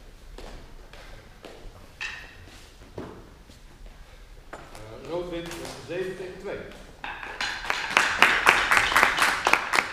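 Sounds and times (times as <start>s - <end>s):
people clapping: 7.3s - 9.9s.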